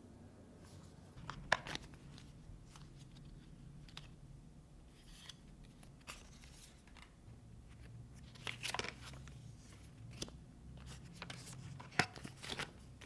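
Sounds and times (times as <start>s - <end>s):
paper rustling and crinkling: 8.1s - 13.0s.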